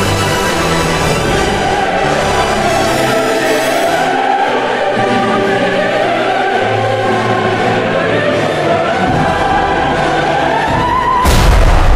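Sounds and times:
choir singing long notes: 0.0 - 11.9.

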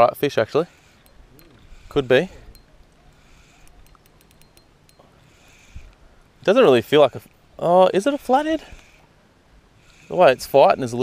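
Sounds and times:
fishing reel ticking: 0.6 - 7.3, 8.0 - 9.1, 9.8 - 11.0.

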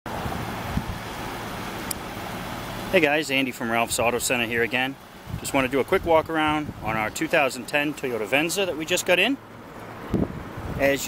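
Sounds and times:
wind on microphone: 0.1 - 1.1, 5.2 - 7.1, 10.0 - 11.0
vehicle rumble: 0.1 - 11.0.

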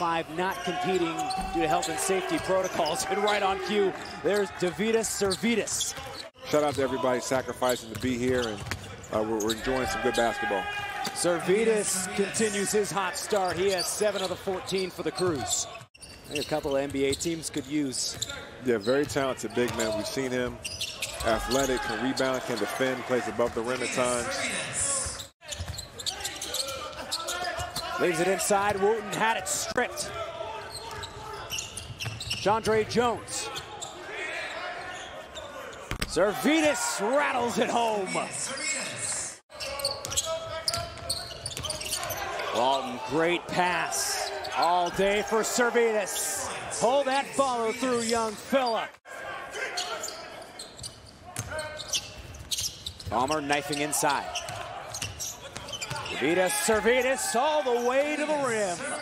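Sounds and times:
basketball bouncing: 7.9 - 8.9.

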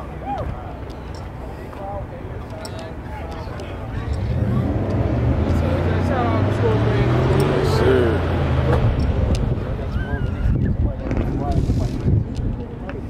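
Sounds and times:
voices talking in background: 0.0 - 13.0.

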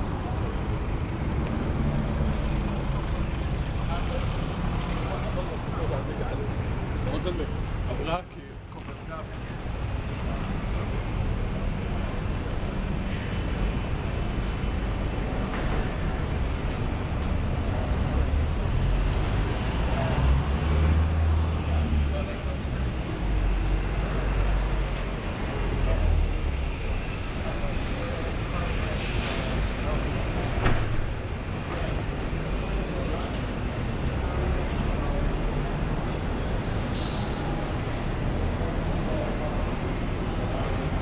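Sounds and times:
traffic rumble: 0.0 - 41.0.

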